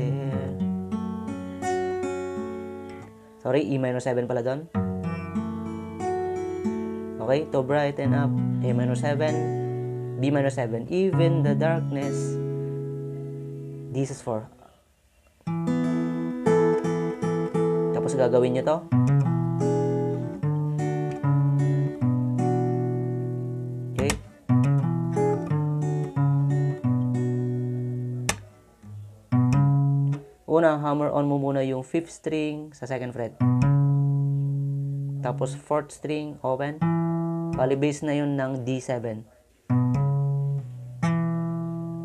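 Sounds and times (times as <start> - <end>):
acoustic guitar picking chords: 0.0 - 14.6, 15.3 - 42.0.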